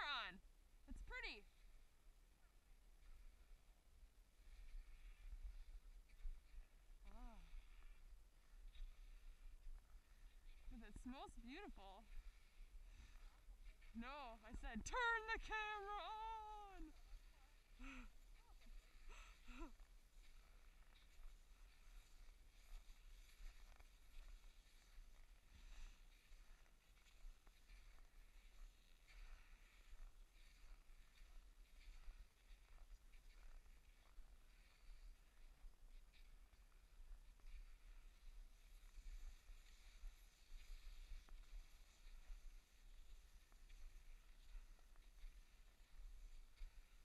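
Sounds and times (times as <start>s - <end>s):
skis crunching on snow: 0.9s - 47.0s.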